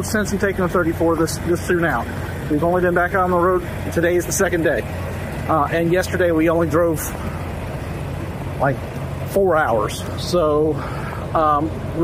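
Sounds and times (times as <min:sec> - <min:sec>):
diesel truck engines idling: 0:00.0 - 0:12.0.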